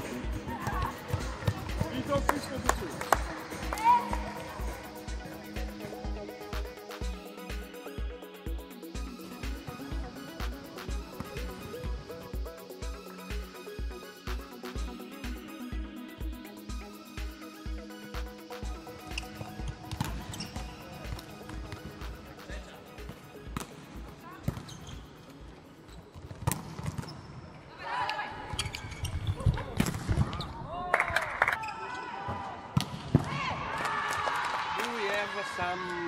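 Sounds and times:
electronic music with steady beat: 0:00.0 - 0:24.2
volleyballs struck and bouncing: 0:19.6 - 0:22.1, 0:26.1 - 0:27.3.

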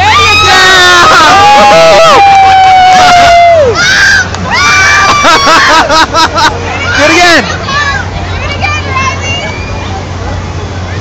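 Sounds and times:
rising and falling shout: 0:00.0 - 0:05.9
low steady hum: 0:00.0 - 0:11.0
people laughing: 0:05.0 - 0:06.6
crowd babble: 0:05.2 - 0:11.0.

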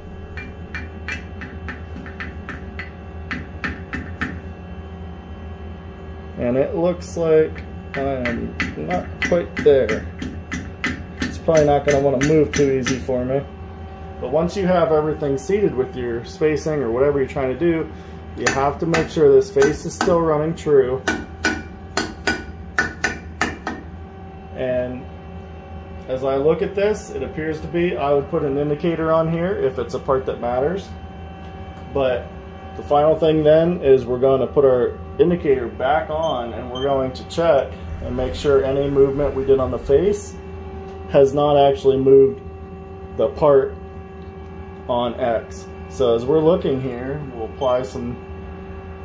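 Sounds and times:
hammer tapping metal: 0:00.2 - 0:04.4, 0:07.9 - 0:13.1, 0:18.4 - 0:20.2, 0:21.0 - 0:23.8
mallet tapping steel: 0:00.3 - 0:04.4.

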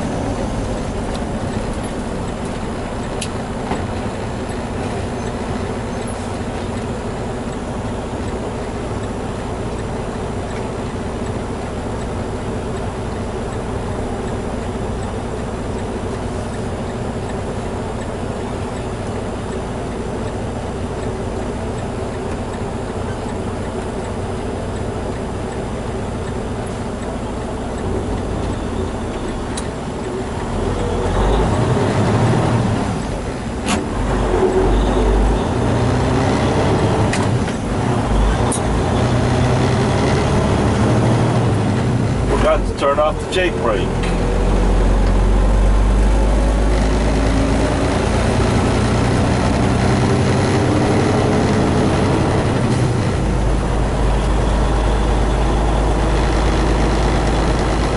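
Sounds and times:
truck diesel engine: 0:00.0 - 0:57.9.

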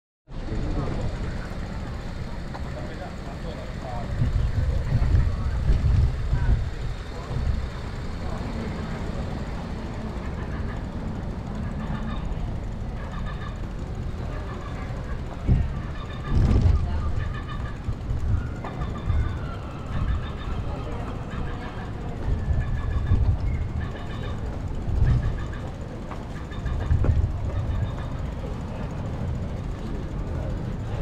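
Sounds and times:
street background noise: 0:00.3 - 0:31.0
wind buffeting microphone: 0:03.7 - 0:08.6, 0:14.9 - 0:31.0.

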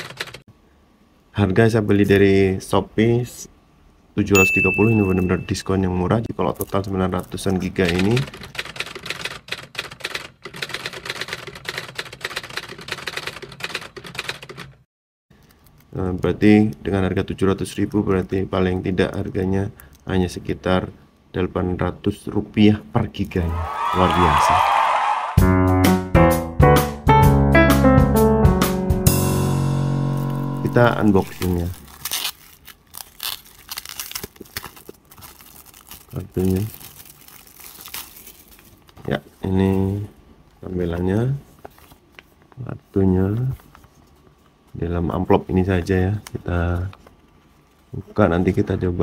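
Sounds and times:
plastic mailer ripping: 0:31.0 - 0:39.0
plastic crinkling: 0:31.1 - 0:39.4.

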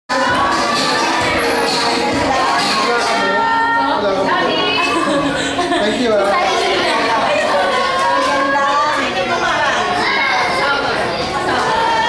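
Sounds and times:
children shouting and cheering: 0:00.1 - 0:12.0.

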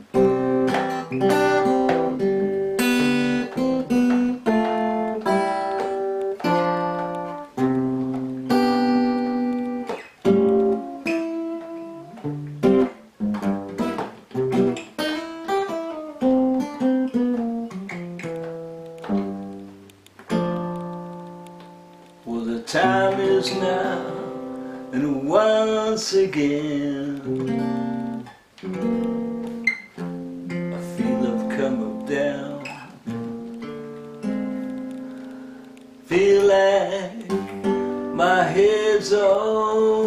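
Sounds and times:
acoustic guitar playing: 0:00.0 - 0:40.0.

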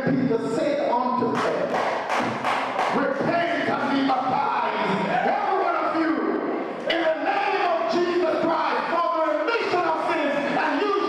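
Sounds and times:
rhythmic percussive strikes: 0:01.3 - 0:04.5.

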